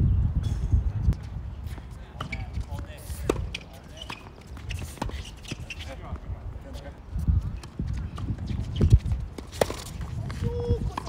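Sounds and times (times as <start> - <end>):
wind rumble on microphone: 0.0 - 3.5, 5.6 - 11.0.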